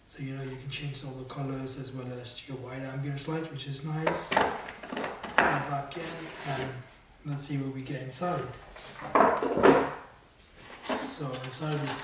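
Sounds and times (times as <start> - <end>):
plastic tray scraping clatter: 10.6 - 12.0.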